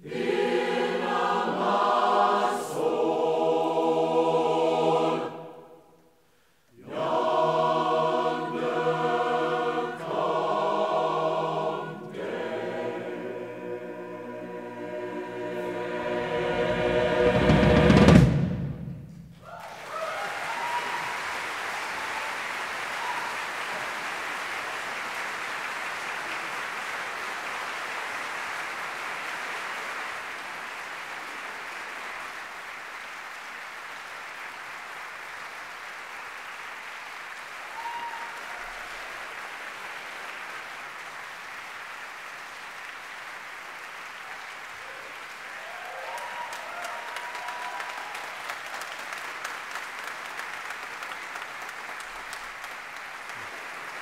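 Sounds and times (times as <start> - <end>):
audience applauding: 19.4 - 54.0.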